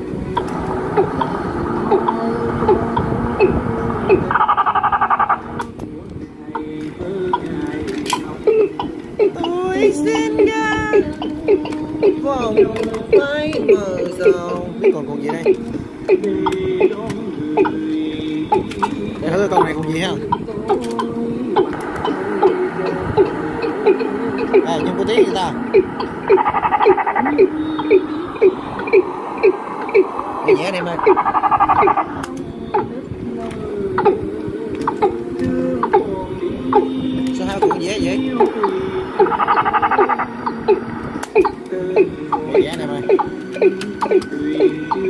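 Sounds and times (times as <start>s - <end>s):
fast even pulsing: 0.0s - 45.0s
music from cassette tape: 0.0s - 45.0s
voice from cassette tape: 6.6s - 8.6s, 9.4s - 17.2s, 17.9s - 25.6s, 30.0s - 39.6s.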